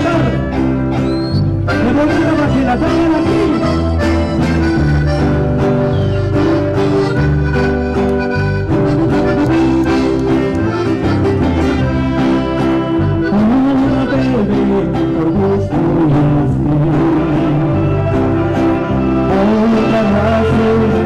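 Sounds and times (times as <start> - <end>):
mariachi band playing: 0.0 - 21.0.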